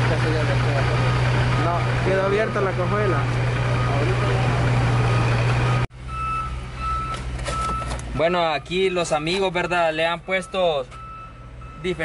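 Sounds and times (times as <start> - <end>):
heavy machinery engine drone: 0.0 - 8.2
reversing alarm beeps: 5.0 - 7.9, 9.6 - 12.0.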